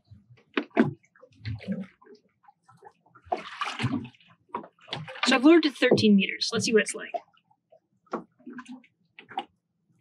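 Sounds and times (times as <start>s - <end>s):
water lapping against a boat: 0.0s - 10.0s.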